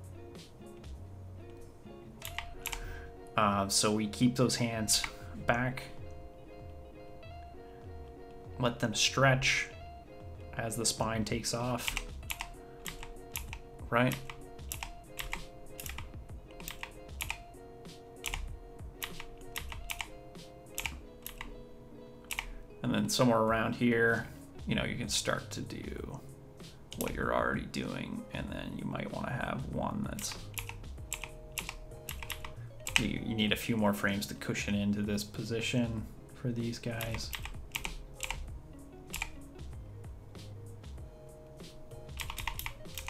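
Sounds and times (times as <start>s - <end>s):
soft background music: 0.0s - 43.0s
keyboard and mouse clicks: 2.2s - 2.9s, 5.0s - 5.2s, 11.6s - 17.5s, 18.2s - 20.1s, 20.7s - 21.5s, 22.3s - 22.5s, 26.9s - 27.2s, 30.2s - 33.2s, 37.0s - 38.5s, 39.1s - 39.4s, 42.0s - 43.0s.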